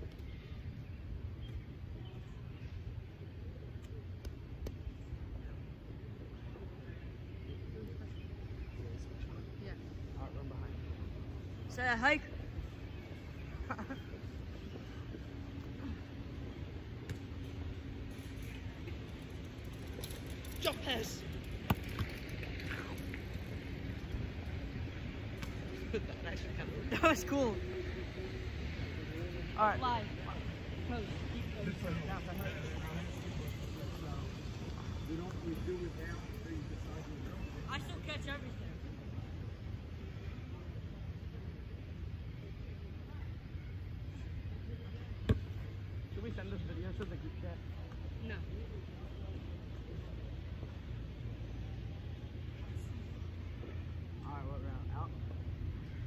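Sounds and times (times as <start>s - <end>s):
faint distant voices: 0.0s - 56.0s.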